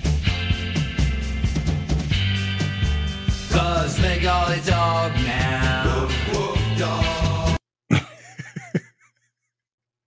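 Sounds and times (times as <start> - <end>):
pop song with male vocal: 3.4 - 7.6
man laughing: 7.9 - 9.5.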